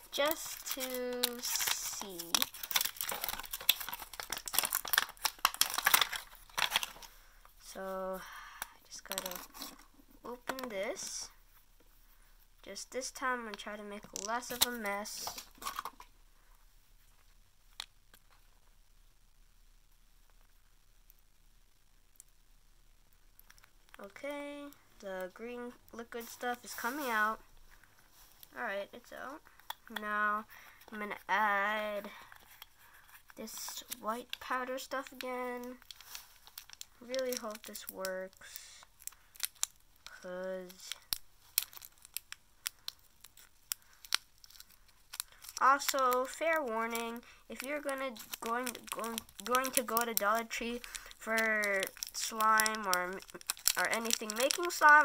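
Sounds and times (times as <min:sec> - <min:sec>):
plastic packet crinkling: 0:00.0 - 0:07.8, 0:08.6 - 0:10.8, 0:13.2 - 0:16.1, 0:25.9 - 0:55.0.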